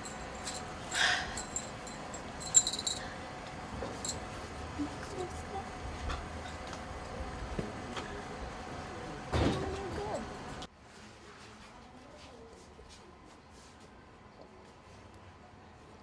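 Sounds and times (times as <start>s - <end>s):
metal bangles clinking: 0.0s - 3.1s, 3.9s - 4.2s.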